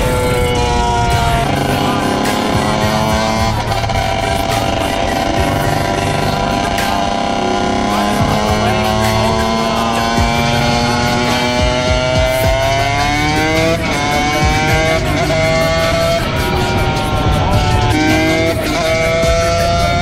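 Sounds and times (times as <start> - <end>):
dirt bike engine: 0.0 - 20.0.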